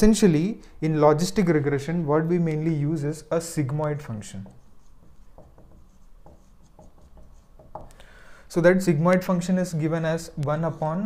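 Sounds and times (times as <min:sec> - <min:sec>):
marker writing on whiteboard: 0:04.3 - 0:08.0.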